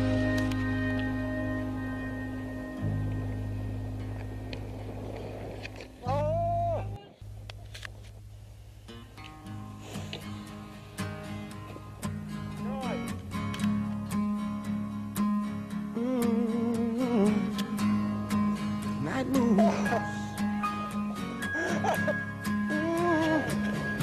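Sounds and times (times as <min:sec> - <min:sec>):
plucked guitar with singing: 0:08.9 - 0:24.0
song with singing and chords: 0:15.9 - 0:20.4.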